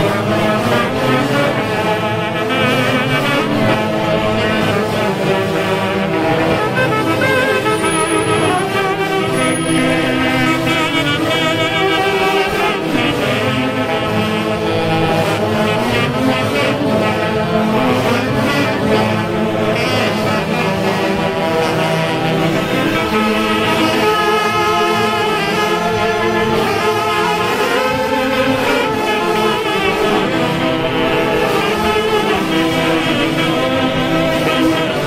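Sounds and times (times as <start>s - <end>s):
orchestra playing dance tune: 0.0s - 35.0s
saxophones clarinets and violins: 0.0s - 35.0s.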